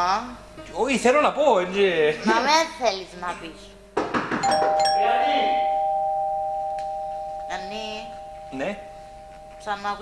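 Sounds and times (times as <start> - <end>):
two-tone doorbell chime: 4.4 - 10.0.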